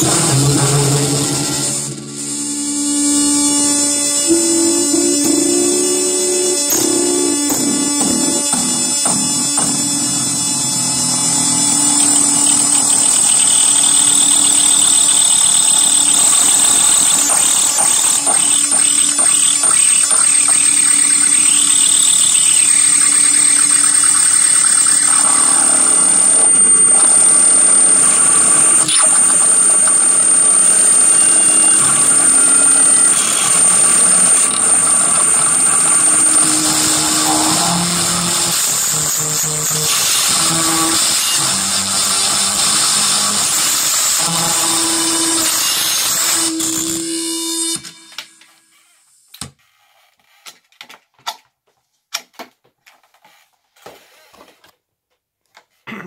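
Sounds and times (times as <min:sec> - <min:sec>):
low drone: 0:00.0 - 0:39.5
high-pitched guitar whine: 0:00.0 - 0:48.6
quick electronic chirps: 0:11.3 - 0:34.3.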